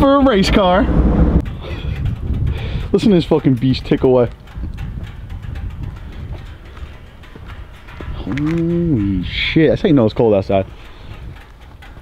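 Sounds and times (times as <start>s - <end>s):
car engine ticking: 0.0s - 12.0s
low uneven engine rumble: 0.0s - 12.0s.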